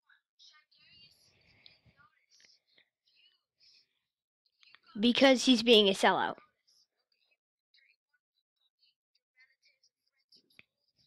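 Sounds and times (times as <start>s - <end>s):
faint boy's voice: 4.7s - 6.4s.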